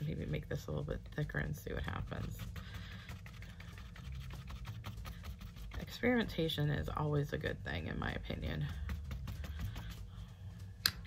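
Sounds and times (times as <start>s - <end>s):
paintbrush tapping on paper: 1.8s - 6.3s, 8.2s - 10.2s.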